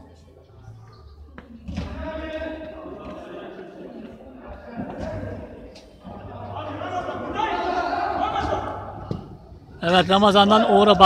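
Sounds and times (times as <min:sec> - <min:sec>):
men calling out echoing: 0:04.7 - 0:09.1.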